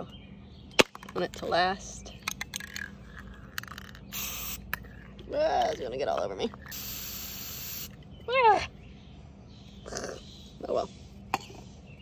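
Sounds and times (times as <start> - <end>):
spray can hiss: 4.1 - 4.6, 6.7 - 8.0.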